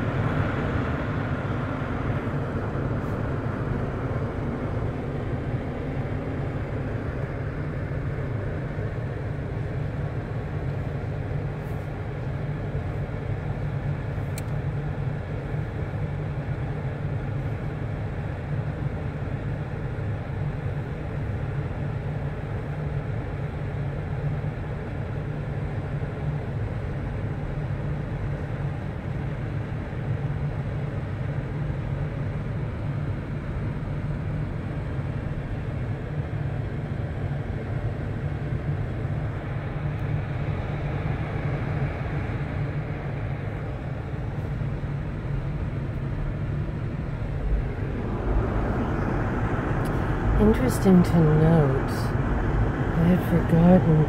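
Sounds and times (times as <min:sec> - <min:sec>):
car driving rumble inside cabin: 0:45.4 - 0:54.0.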